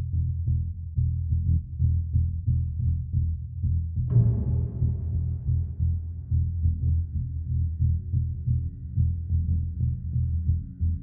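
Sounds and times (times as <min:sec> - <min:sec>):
deep bass pulse: 0:00.0 - 0:11.0.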